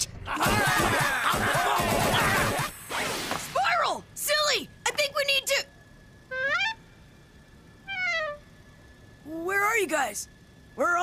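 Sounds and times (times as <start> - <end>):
faint steady background: 0.0 - 11.0.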